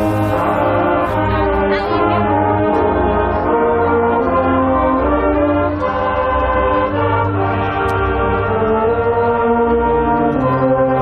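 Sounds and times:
marching band brass chords: 0:00.0 - 0:11.0.

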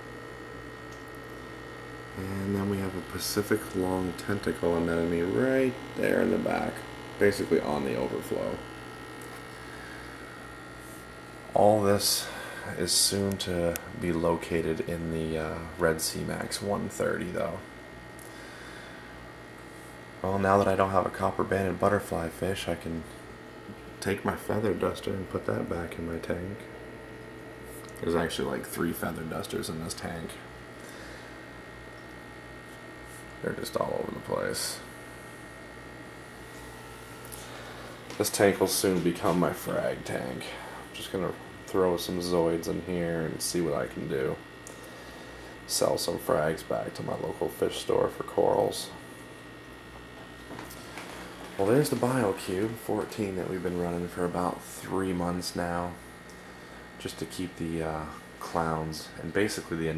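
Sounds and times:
aquarium pump hum: 0:00.0 - 0:59.9.

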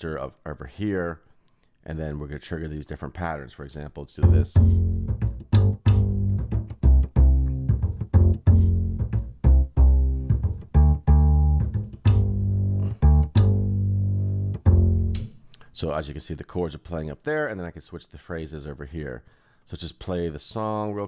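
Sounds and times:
plucked double bass line: 0:04.2 - 0:15.3.

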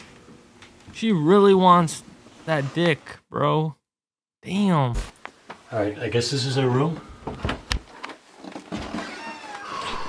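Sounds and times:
door creaking open: 0:08.5 - 0:10.0.

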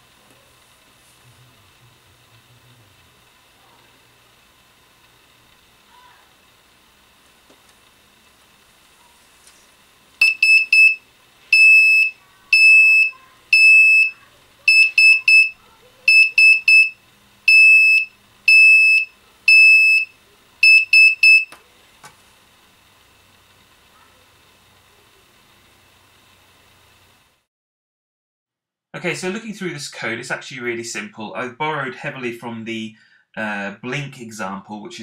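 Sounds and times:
buzzer beeping morse code: 0:10.2 - 0:21.6.

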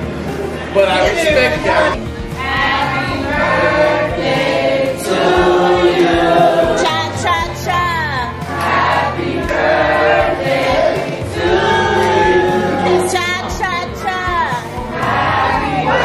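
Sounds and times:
low accompaniment: 0:00.0 - 0:16.0
group of voices singing: 0:01.0 - 0:16.0.

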